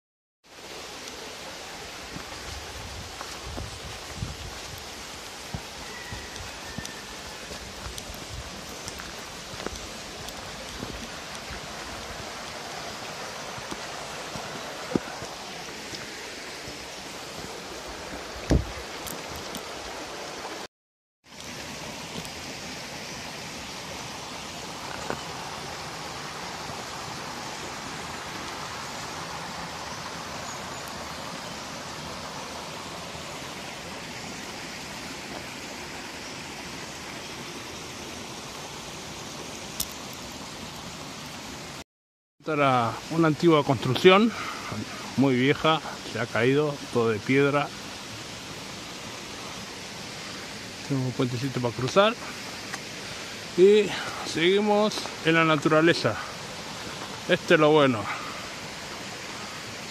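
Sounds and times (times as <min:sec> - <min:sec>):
stream running over rocks: 0:00.4 - 0:41.8, 0:42.4 - 0:59.9.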